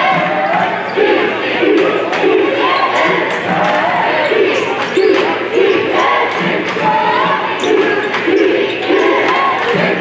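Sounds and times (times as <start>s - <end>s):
crowd shouting and chanting: 0.0s - 10.0s.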